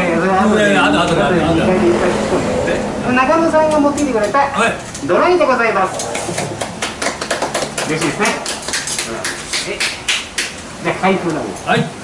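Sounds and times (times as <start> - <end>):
voices: 0.0 - 12.0
people clapping: 6.0 - 10.6.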